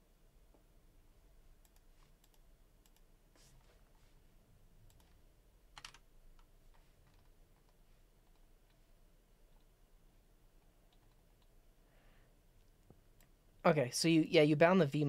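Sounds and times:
computer keyboard keystrokes: 0:05.8 - 0:08.8.

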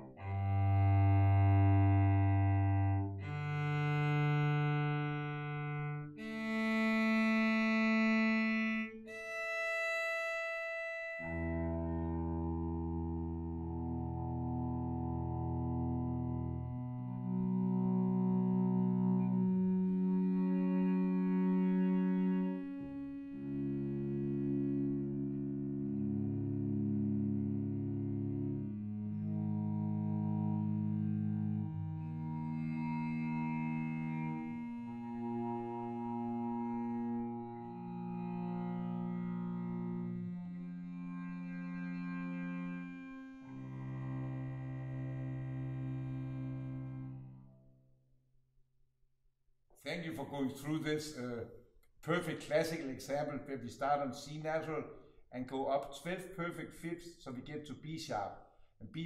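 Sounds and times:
cellos playing long bowed notes: 0:00.0 - 0:47.6.

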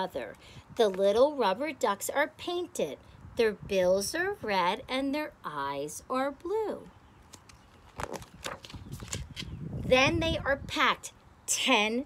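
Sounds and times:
book pages turning: 0:07.2 - 0:09.6.

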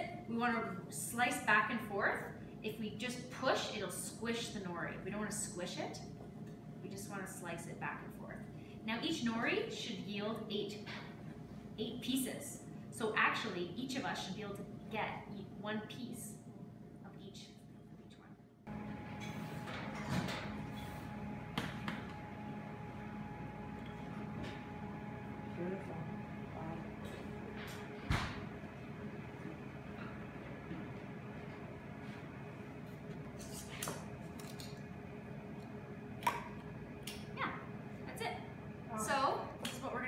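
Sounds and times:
room hum: 0:00.0 - 0:40.0.

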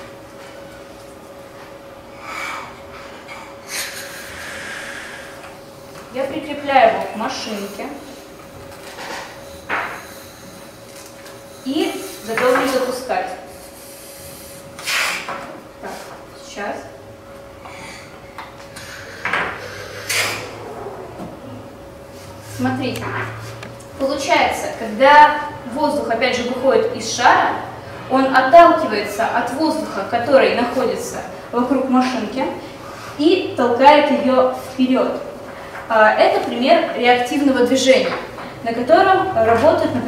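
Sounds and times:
person blowing into balloon: 0:03.6 - 0:05.4, 0:09.3 - 0:10.8, 0:13.5 - 0:15.3, 0:18.7 - 0:21.6.

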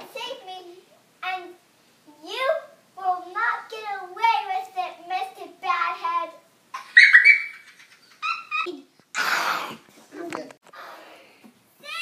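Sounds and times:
child squealing: 0:06.8 - 0:07.6.

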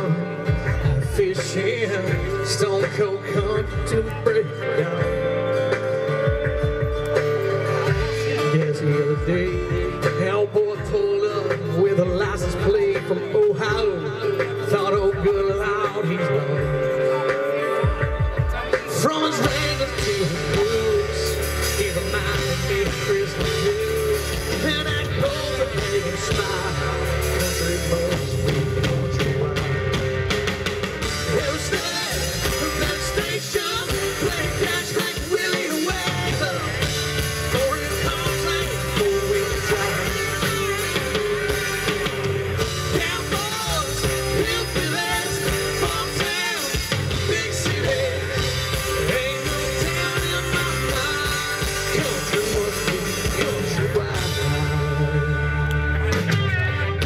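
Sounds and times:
person singing: 0:00.0 - 0:30.3, 0:31.0 - 0:57.0
live rock band playing: 0:00.0 - 0:57.0.

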